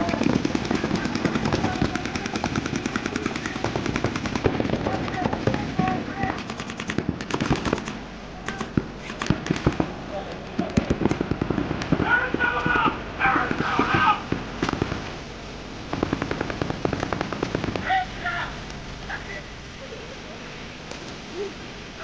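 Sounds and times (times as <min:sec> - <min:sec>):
paintball markers firing: 0:00.0 - 0:05.6, 0:06.4 - 0:09.9.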